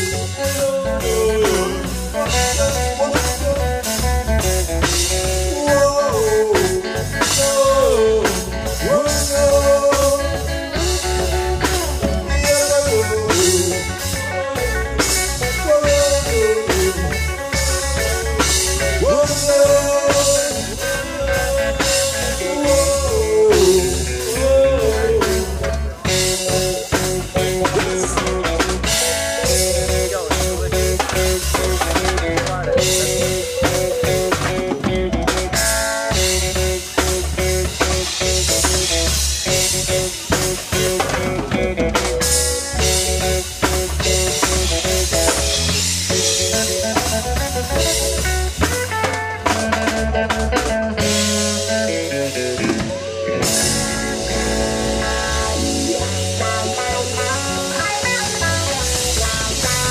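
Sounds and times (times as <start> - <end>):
drum kit with rimshots: 0.0 - 59.9
electric bass guitar: 0.0 - 59.9
electric guitar: 0.0 - 59.9
keyboard: 0.0 - 59.9.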